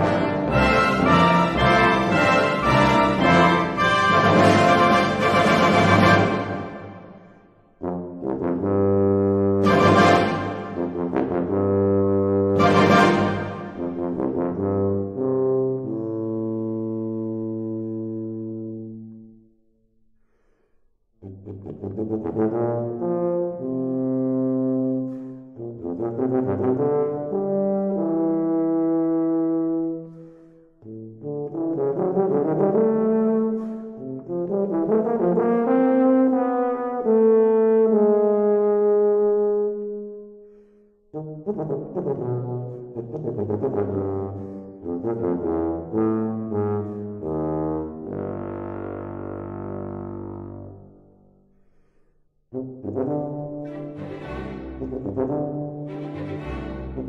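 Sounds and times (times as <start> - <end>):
tuba playing slow melody: 0.0 - 7.2, 7.8 - 19.5, 21.2 - 51.4, 52.5 - 57.0.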